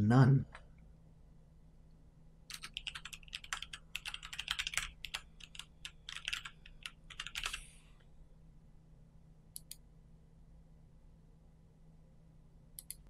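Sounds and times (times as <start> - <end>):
computer keyboard typing: 2.5 - 7.7.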